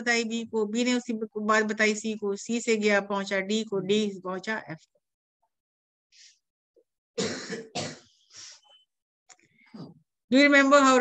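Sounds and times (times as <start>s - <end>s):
person coughing: 7.2s - 8.2s.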